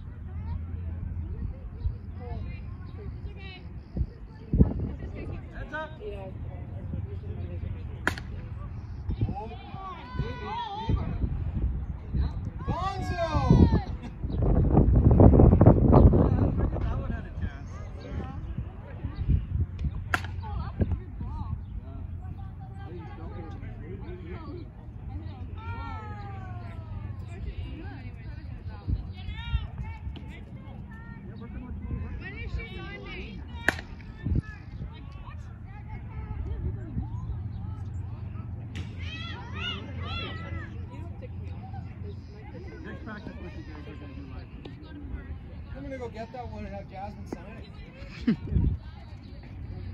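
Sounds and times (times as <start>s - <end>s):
bat striking ball: 8.0s - 8.5s, 20.1s - 20.5s, 33.6s - 34.1s, 38.7s - 39.1s.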